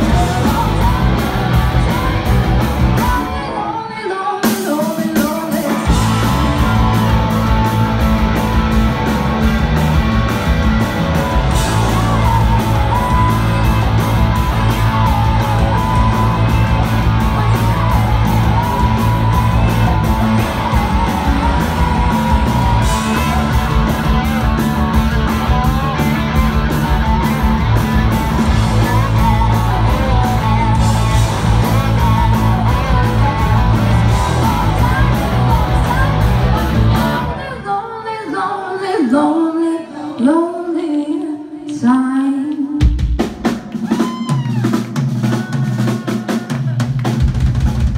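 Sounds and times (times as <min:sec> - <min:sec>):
drum kit beat: 0:00.0 - 0:03.3, 0:04.4 - 0:37.2, 0:42.8 - 0:47.9
bass guitar: 0:00.0 - 0:03.6, 0:05.6 - 0:37.6
electric guitars: 0:00.0 - 0:37.8.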